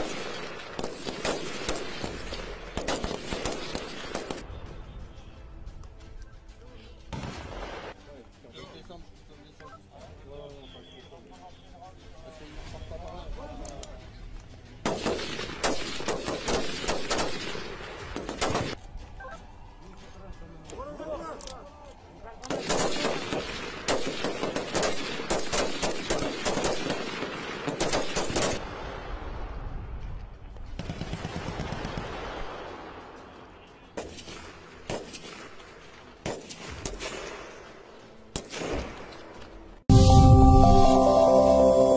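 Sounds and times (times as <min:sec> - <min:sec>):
rifle gunfire burst: 0:00.0 - 0:04.4, 0:14.9 - 0:18.8, 0:22.5 - 0:28.6.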